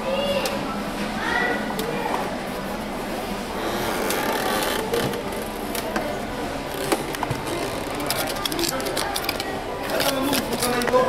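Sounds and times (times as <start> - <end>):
shop background noise: 0.0 - 11.0
cardboard and plastic rustling: 6.7 - 11.0.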